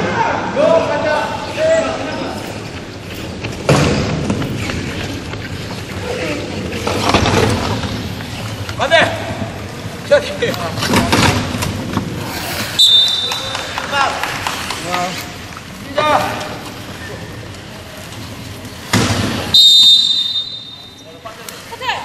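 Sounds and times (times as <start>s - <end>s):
referee's whistle: 12.8s - 13.6s, 19.5s - 21.0s.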